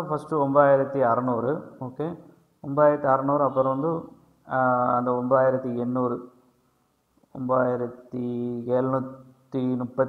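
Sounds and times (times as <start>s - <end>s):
man speaking in chant-like voice: 0.0s - 6.2s, 7.4s - 10.0s.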